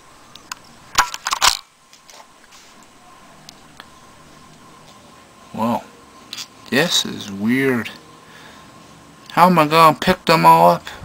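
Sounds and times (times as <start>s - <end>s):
plastic action figures clacking: 0.5s - 1.7s.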